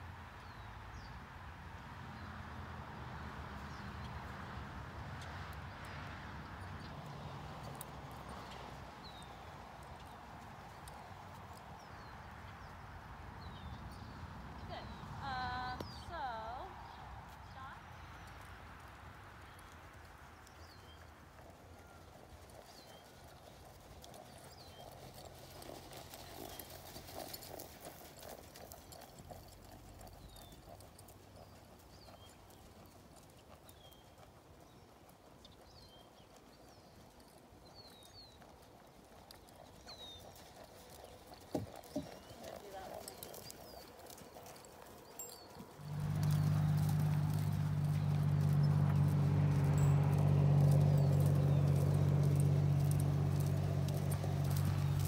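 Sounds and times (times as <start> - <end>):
hoofbeats cantering on sand: 2.1 - 55.0
small birds chirping: 20.4 - 55.0
low engine hum: 45.7 - 55.0.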